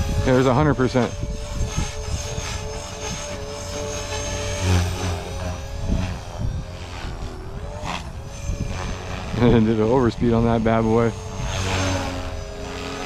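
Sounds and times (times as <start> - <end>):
rc helicopter rotor whine: 0.0 - 13.0.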